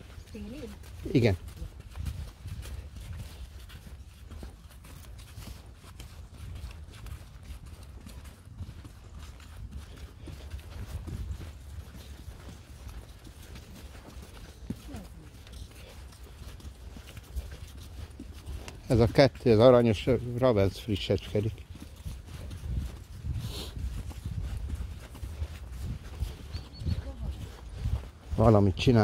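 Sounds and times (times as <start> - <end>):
hoofbeats on muddy sand: 0.0 - 29.0.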